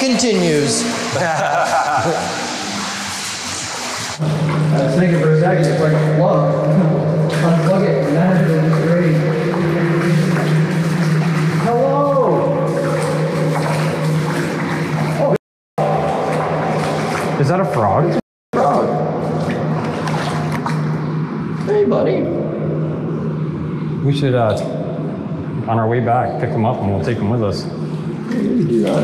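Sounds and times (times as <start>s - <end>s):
low hum in pipe: 0.0s - 29.0s.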